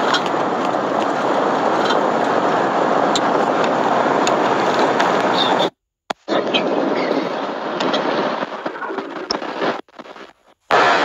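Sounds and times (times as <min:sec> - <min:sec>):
road and engine noise in van: 0:00.0 - 0:06.3.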